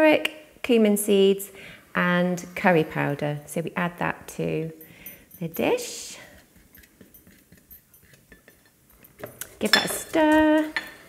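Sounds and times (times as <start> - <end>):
utensil clinking on ceramic dish: 4.9 - 11.0.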